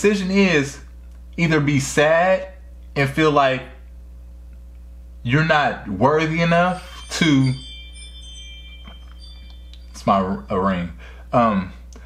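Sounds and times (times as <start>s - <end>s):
low electrical hum: 0.0s - 12.0s
faint high ringing tones: 5.1s - 11.8s.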